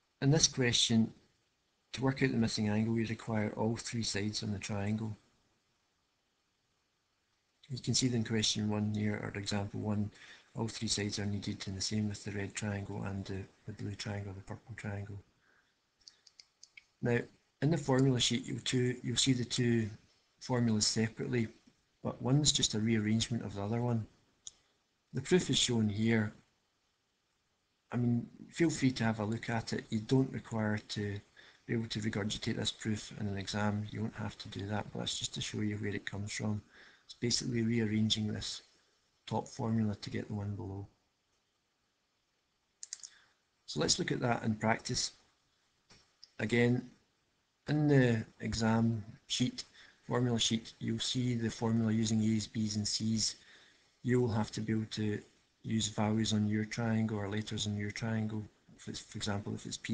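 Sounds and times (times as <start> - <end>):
faint computer mouse clicks: 16.0 - 17.0, 42.8 - 43.2.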